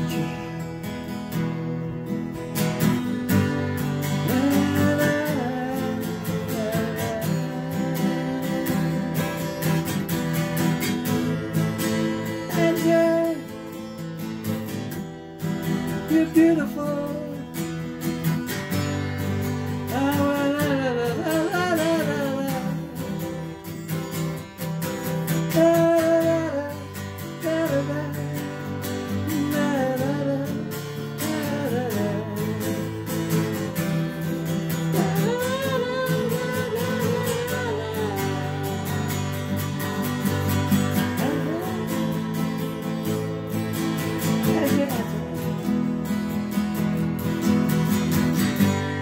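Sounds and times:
person singing: 0.0s - 47.0s
acoustic guitar strumming: 0.0s - 49.0s.

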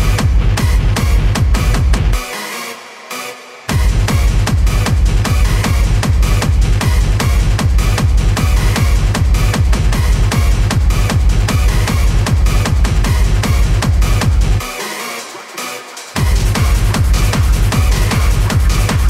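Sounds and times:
four-on-the-floor kick drum: 0.0s - 2.2s, 3.7s - 14.6s, 16.2s - 19.0s
dense synth layers: 0.0s - 19.0s.

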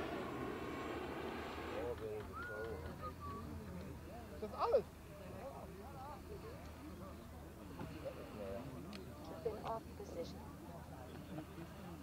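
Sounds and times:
low steady hum: 0.0s - 2.0s
faint voices talking: 0.0s - 12.0s.

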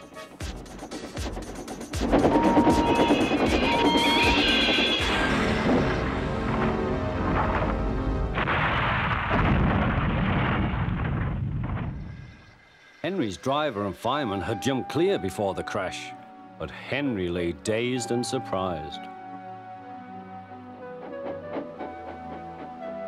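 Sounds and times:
dramatic music: 0.0s - 9.0s
train crashing and rumbling: 0.0s - 13.5s.

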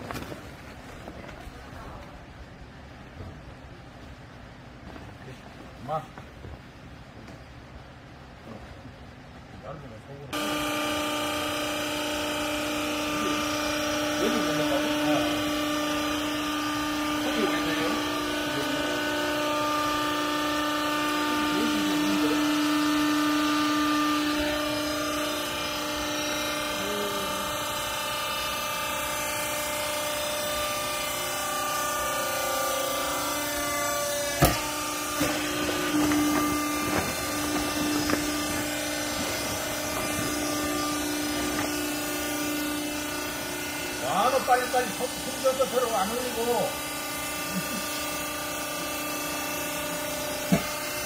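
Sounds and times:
baler motor and pump humming: 0.0s - 51.0s.

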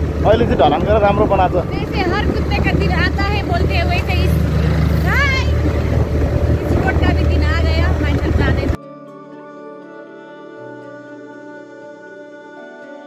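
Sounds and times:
scooter engine droning: 0.0s - 8.8s
wind rumble on microphone: 0.0s - 8.8s
people talking: 0.2s - 8.8s.

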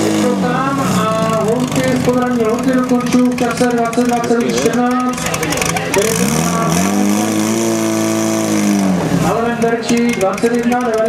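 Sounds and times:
pump engine revving high: 0.0s - 11.0s.

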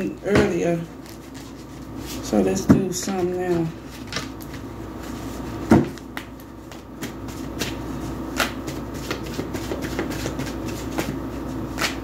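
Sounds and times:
cards being shuffled: 6.0s - 12.0s.

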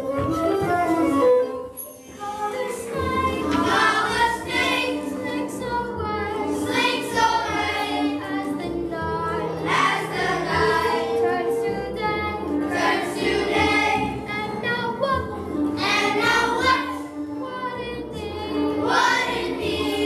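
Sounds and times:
recorded musical accompaniment: 0.0s - 20.0s
children singing: 2.1s - 20.0s
girl singing: 2.2s - 20.0s.

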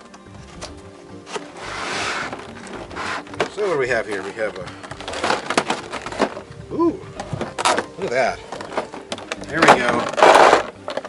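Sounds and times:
background music: 0.0s - 11.0s
plastic and cardboard rustling: 0.3s - 11.0s.

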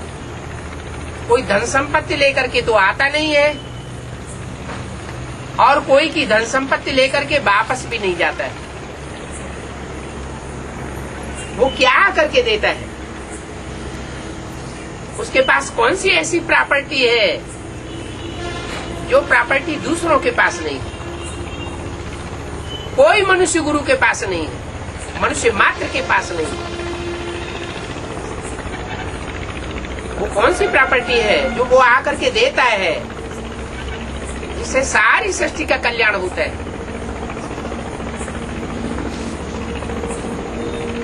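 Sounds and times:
background hum and hiss: 0.0s - 41.0s
faint steady tones: 0.0s - 41.0s.

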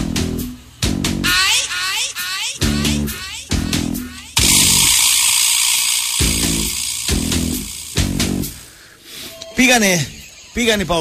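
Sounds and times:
plucked bass guitar notes: 2.9s - 5.0s, 6.2s - 8.6s
loud hissing sound effect: 4.4s - 8.8s.

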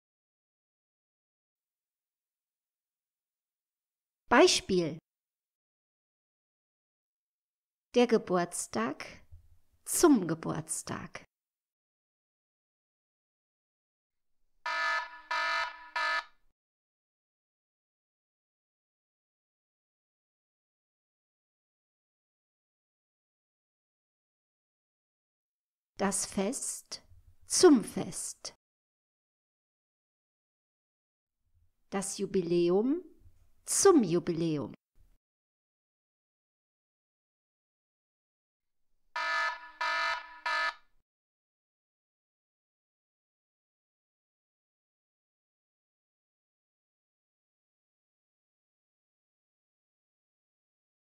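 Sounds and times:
wrong-answer buzzer: 14.7s - 16.3s, 39.2s - 40.8s.

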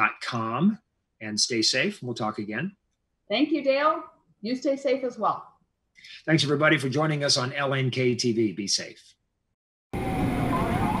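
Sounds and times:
faint tone dipping and rising: 10.0s - 11.0s.

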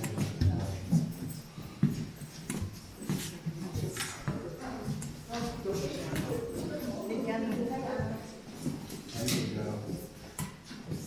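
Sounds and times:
footsteps on wooden boardwalk: 0.0s - 9.1s.

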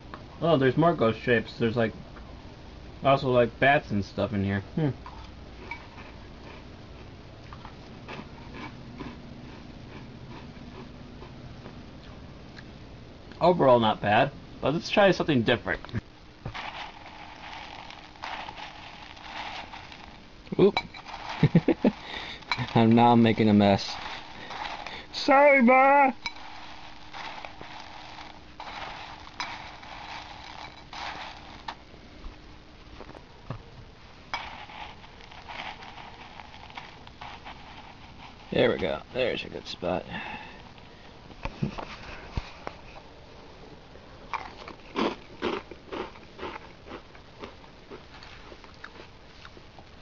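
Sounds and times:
crunchy cereal chewing: 5.2s - 12.7s, 16.4s - 31.9s, 34.4s - 40.7s, 44.3s - 49.7s.

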